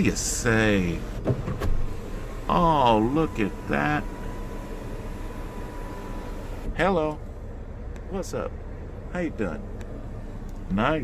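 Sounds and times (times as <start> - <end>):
faint motor whine: 0.0 - 11.0.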